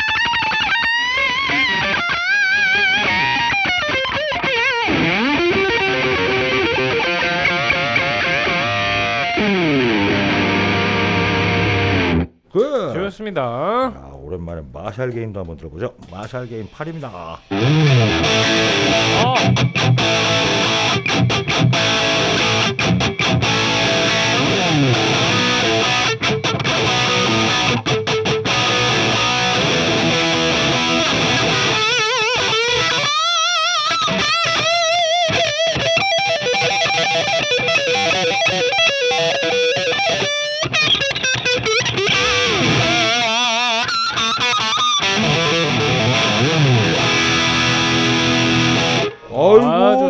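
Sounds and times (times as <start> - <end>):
distorted electric guitar: 0.0 - 12.9, 17.3 - 50.0.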